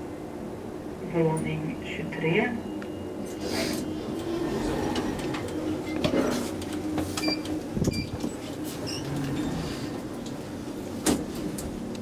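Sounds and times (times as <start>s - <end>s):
elevator low hum: 0.0s - 12.0s.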